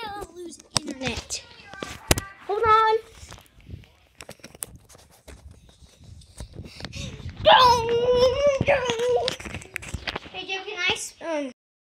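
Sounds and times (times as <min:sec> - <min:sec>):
tablet being handled: 0:00.5 - 0:02.3, 0:03.0 - 0:07.4, 0:08.6 - 0:10.4.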